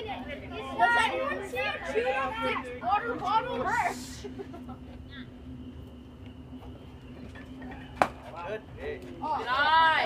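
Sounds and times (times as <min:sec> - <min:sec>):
steady hum: 0:00.0 - 0:10.0
baseball bat smack: 0:08.0 - 0:08.3.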